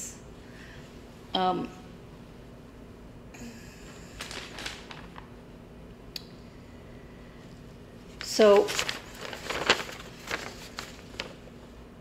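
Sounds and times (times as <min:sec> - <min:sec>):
fabric rustling: 0:08.0 - 0:11.5.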